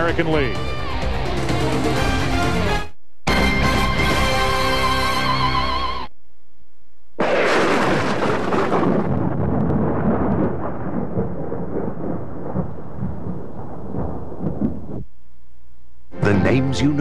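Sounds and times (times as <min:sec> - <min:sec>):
thunder crack and rumble: 0:07.2 - 0:15.1.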